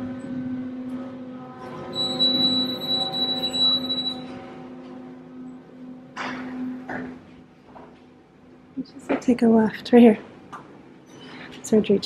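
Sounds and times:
elevator low hum: 0:00.0 - 0:12.0
high electronic tone: 0:01.9 - 0:05.5.

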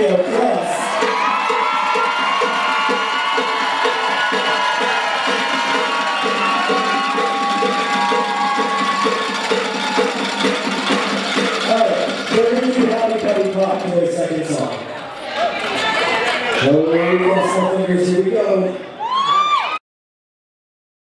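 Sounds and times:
crowd cheering and screaming: 0:00.0 - 0:13.5, 0:14.8 - 0:19.8
steady beat: 0:00.8 - 0:14.7.

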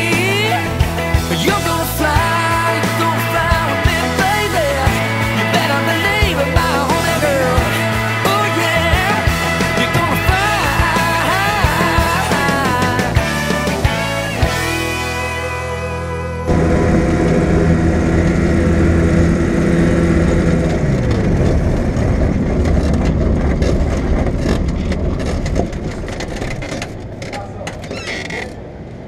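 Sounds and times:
music: 0:00.0 - 0:17.6
ultralight aircraft engine running: 0:00.0 - 0:29.0.

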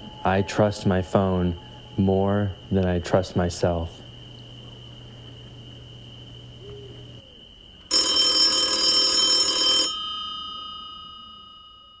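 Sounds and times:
bell ringing: 0:07.9 - 0:12.0.

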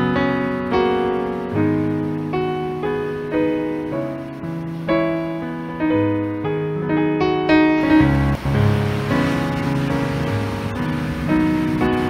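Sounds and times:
ocean surf: 0:00.0 - 0:12.0
slow piano music: 0:00.0 - 0:12.0.

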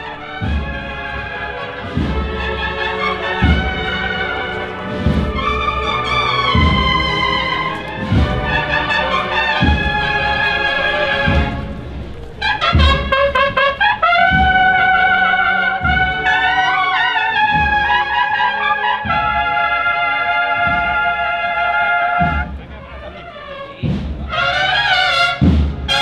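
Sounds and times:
bass drum beats: 0:00.0 - 0:18.2
cornets holding sustained chords: 0:00.0 - 0:23.3.

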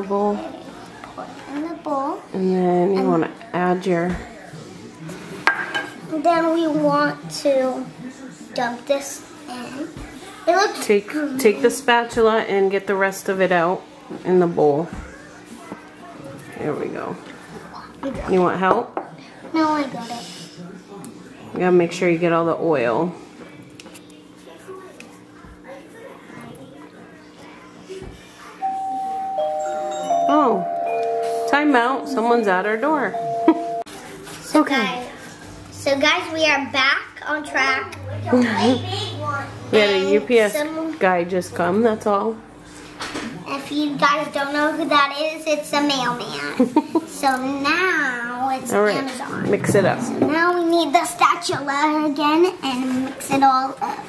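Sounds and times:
dishware clink: 0:05.4 - 0:06.0
two-note doorbell chime: 0:28.6 - 0:32.5, 0:33.1 - 0:33.9.

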